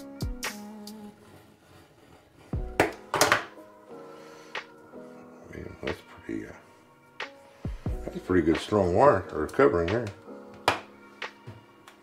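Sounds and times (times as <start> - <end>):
background music with held tones: 0.0 - 12.0.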